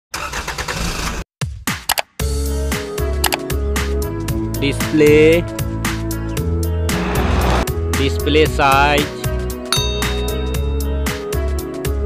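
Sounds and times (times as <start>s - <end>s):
sharp clicks: 1.8s - 2.1s, 3.2s - 3.4s.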